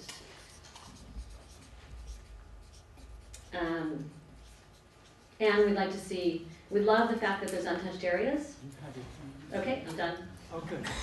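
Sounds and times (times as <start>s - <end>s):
paper scratching and rustling: 0.0s - 3.5s.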